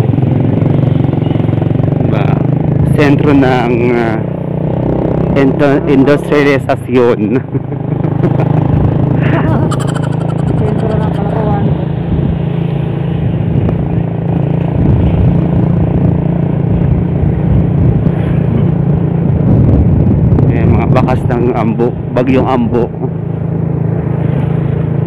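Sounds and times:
motorcycle engine running: 0.0s - 5.8s, 6.5s - 20.1s
wind rumbling on microphone: 7.4s - 23.1s.

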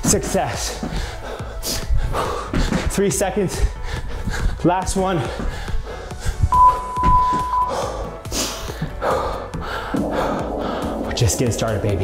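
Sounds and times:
background music: 0.0s - 12.0s
long high timer beep: 6.5s - 8.0s.

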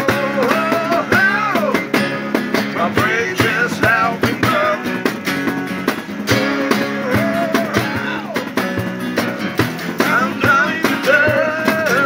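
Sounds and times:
acoustic guitars strumming rock: 0.0s - 12.0s.

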